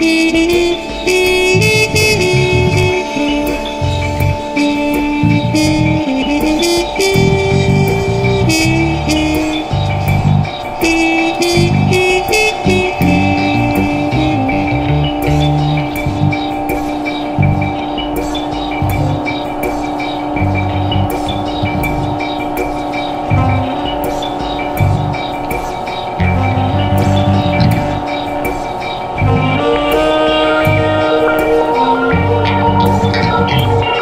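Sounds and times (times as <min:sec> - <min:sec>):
trumpet holding long notes: 0:00.0 - 0:25.4, 0:26.1 - 0:34.0
electric bass lines: 0:00.0 - 0:25.5, 0:26.2 - 0:34.0
electronic drone: 0:00.0 - 0:34.0.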